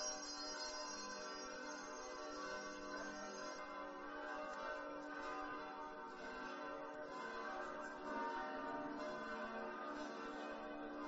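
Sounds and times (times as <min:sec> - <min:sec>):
church bells ringing: 0:00.0 - 0:11.0.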